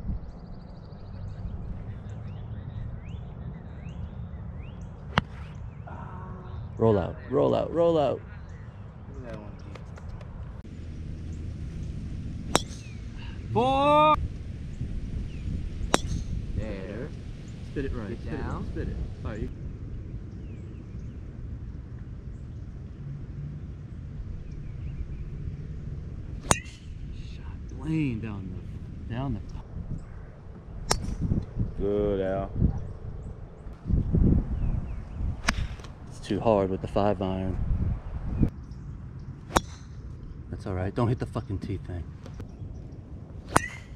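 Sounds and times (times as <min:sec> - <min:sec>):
golf club striking ball: 0:05.1 - 0:05.5, 0:12.4 - 0:13.1, 0:15.9 - 0:16.4, 0:26.4 - 0:27.0, 0:30.9 - 0:31.3, 0:35.4 - 0:35.9, 0:39.5 - 0:40.2, 0:43.5 - 0:43.9
low background rumble: 0:08.3 - 0:36.3
low rumble: 0:09.6 - 0:13.6.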